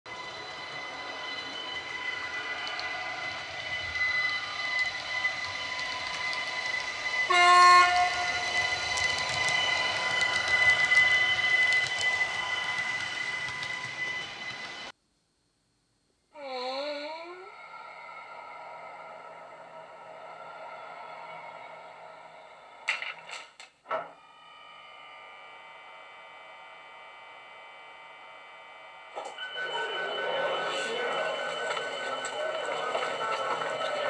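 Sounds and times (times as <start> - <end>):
model train electric whine: 0.1 - 14.9, 24.0 - 34.0.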